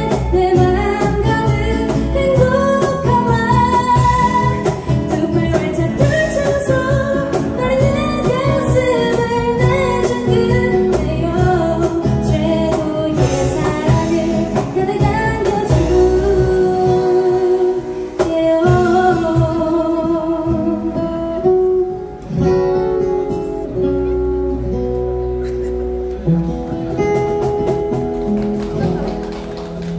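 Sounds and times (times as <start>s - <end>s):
woman singing: 0.0s - 21.5s.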